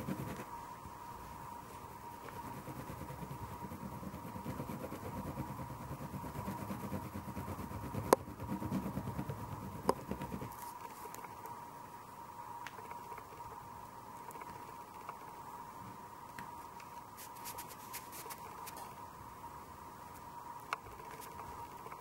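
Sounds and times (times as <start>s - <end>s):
oil pastel scratching on paper: 0.0s - 0.5s, 2.2s - 11.3s, 17.2s - 18.9s, 20.9s - 21.9s.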